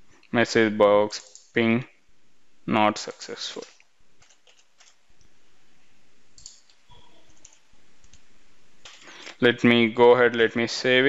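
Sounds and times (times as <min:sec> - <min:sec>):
low steady background noise: 0:00.0 - 0:11.0
computer mouse clicks: 0:06.4 - 0:08.2.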